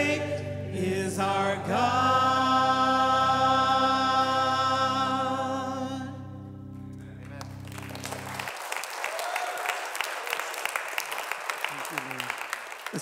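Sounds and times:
congregation applauding: 7.0 - 13.0.

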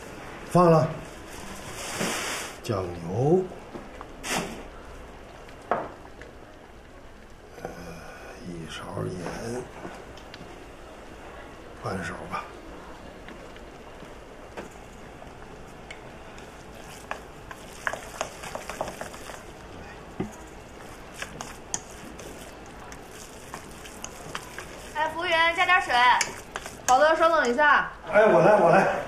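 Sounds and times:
low kitchen hiss: 0.0 - 29.0.

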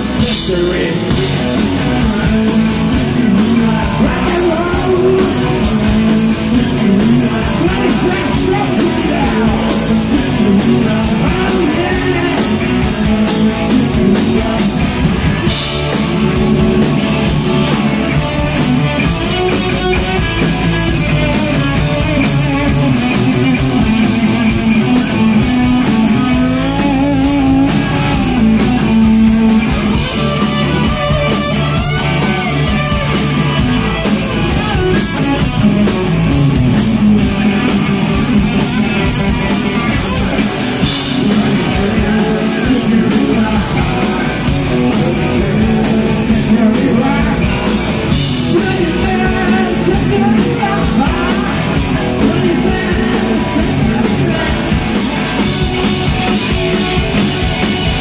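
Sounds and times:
drum kit: 0.0 - 58.0
electric guitars: 0.0 - 58.0.

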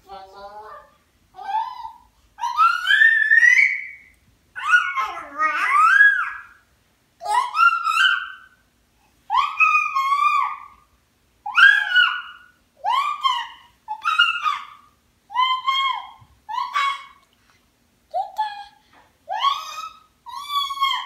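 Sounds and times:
baby squealing: 1.4 - 4.0, 4.6 - 6.6, 7.2 - 8.5, 9.3 - 10.8, 11.5 - 17.2, 19.3 - 21.0.

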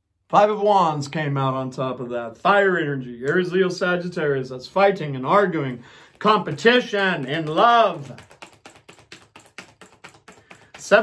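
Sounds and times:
cards being shuffled: 5.4 - 11.0.

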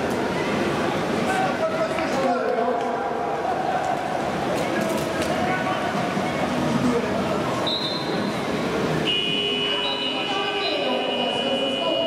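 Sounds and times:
busy indoor arena din: 0.0 - 12.0.

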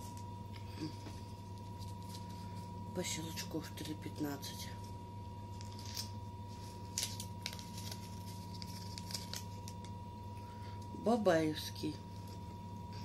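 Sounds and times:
paper wrapper crinkling and ripping: 1.5 - 2.6, 5.5 - 10.0.

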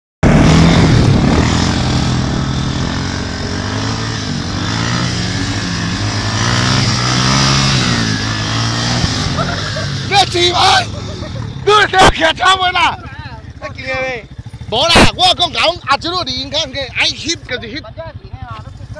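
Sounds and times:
quad bike engine revving: 0.2 - 18.9.

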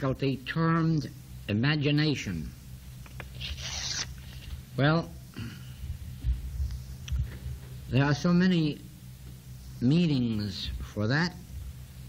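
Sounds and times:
low electrical hum: 0.0 - 12.0
soft low thumps: 5.8 - 7.8
man speaking: 9.8 - 11.4.

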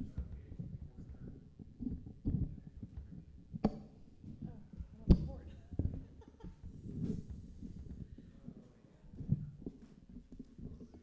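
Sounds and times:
low thumps and knocks: 0.0 - 8.2.

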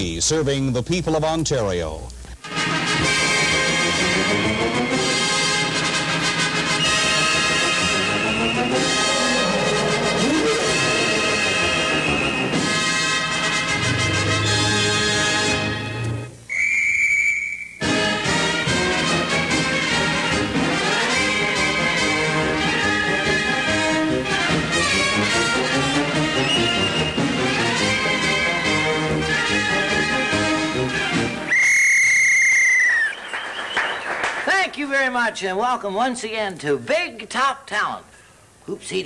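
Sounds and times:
theme music: 2.4 - 16.3, 17.8 - 31.5
brass band circus music: 2.4 - 31.6
high whistle note: 6.8 - 9.5, 16.5 - 18.0, 26.4 - 27.4, 31.5 - 34.0.

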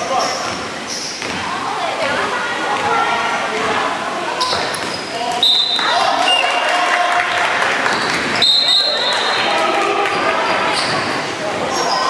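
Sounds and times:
balls bouncing on wooden floor: 0.4 - 3.8.

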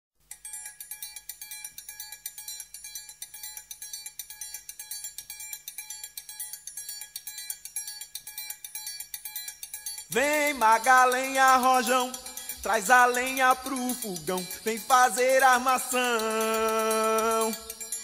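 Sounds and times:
cowbell struck in fast rhythm: 8.8 - 18.0.

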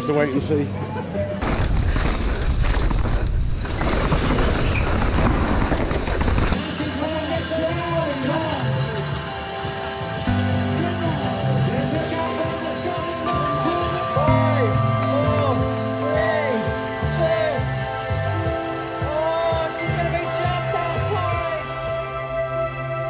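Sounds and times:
bike rattling over rough trail: 1.4 - 22.1
wind rushing over microphone: 1.8 - 6.6
music with stepping bass line: 6.6 - 23.0.

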